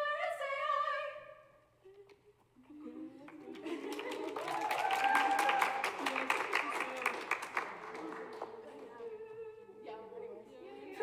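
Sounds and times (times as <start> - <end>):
audience applause: 3.5 - 8.8.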